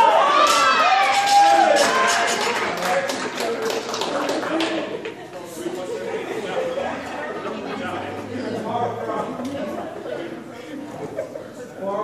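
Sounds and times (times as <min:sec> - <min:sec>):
voices: 0:01.6 - 0:12.0.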